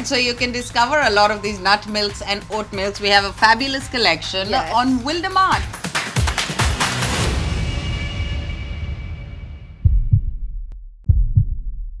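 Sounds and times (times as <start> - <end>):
deep thumps: 9.8 - 12.0.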